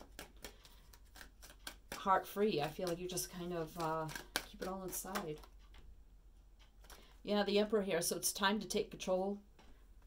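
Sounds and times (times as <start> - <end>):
cards clicking and tapping: 0.0 - 5.9.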